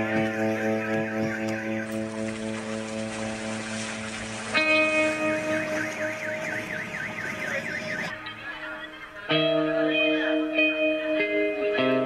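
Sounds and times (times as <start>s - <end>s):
held music notes: 0.0s - 12.0s
warbling electronic alarm tone: 0.4s - 2.8s, 4.5s - 9.0s.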